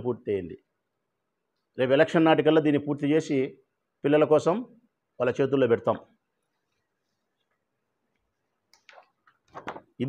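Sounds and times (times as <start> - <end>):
paper rustling: 8.9 - 10.0.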